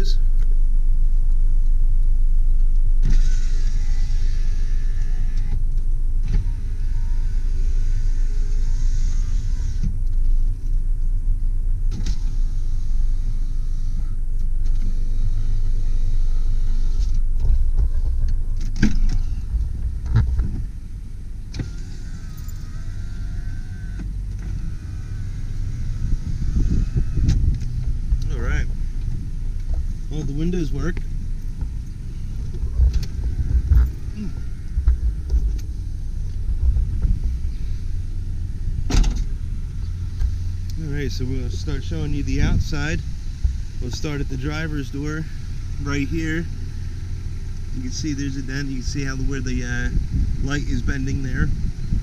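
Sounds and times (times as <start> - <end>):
car engine idling: 0.0 - 52.0
power window motors whirring: 0.6 - 10.8, 11.8 - 52.0.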